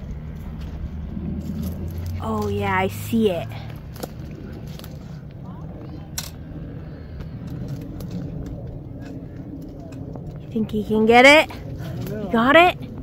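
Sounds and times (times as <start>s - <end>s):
branches and leaves rustling: 0.0s - 12.9s
low steady rumble: 0.0s - 13.0s.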